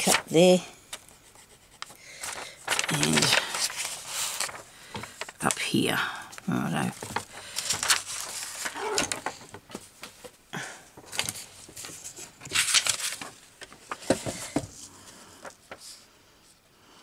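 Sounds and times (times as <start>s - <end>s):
paper rustling and sliding: 0.0s - 5.7s, 6.8s - 10.4s, 11.0s - 16.1s.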